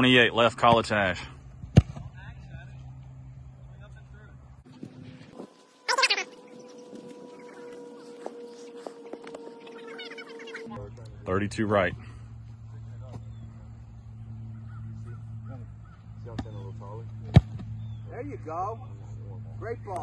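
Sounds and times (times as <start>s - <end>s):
foot kicking football: 1.6s - 2.2s, 15.9s - 17.8s.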